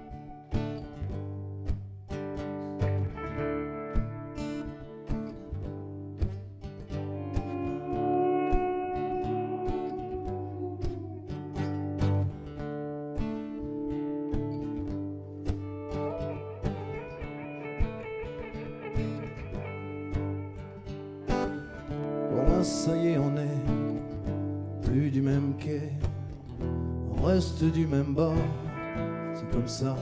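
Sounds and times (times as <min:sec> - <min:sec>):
acoustic guitar chords: 0:00.0 - 0:30.0
electric guitar lead notes: 0:00.0 - 0:30.0.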